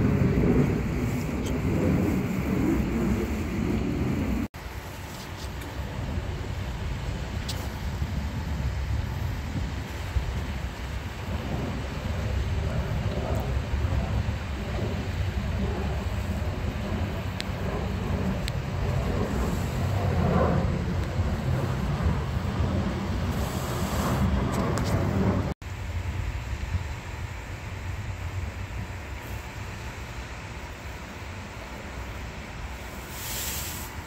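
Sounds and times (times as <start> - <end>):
wind on microphone: 0.0 - 29.5
jet airliner engine rumble: 0.0 - 34.0.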